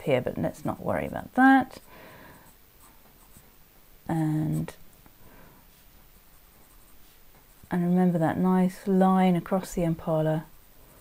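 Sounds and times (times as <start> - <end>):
pencil scratching on paper: 5.7 - 7.7.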